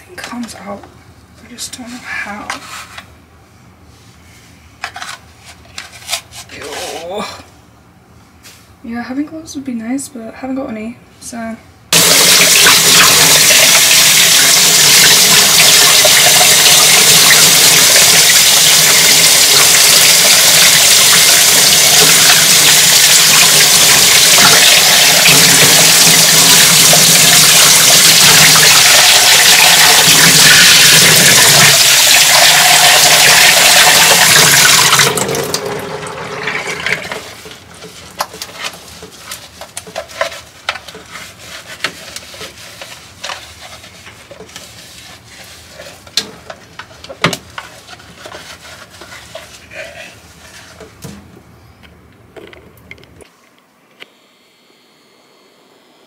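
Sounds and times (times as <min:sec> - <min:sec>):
faucet running into sink: 0:12.0 - 0:37.3.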